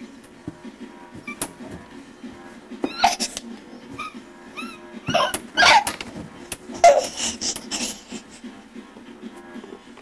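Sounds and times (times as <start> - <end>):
baby squeaking and squealing: 1.2 - 1.4, 2.8 - 3.3, 4.0 - 5.9.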